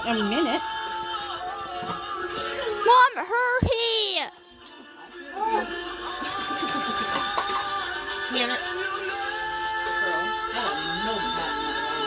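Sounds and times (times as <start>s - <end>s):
television music: 0.0s - 12.0s.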